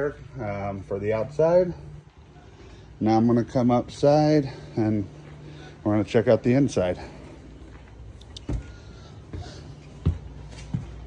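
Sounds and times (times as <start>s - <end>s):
footsteps on wooden stairs: 7.7s - 11.0s.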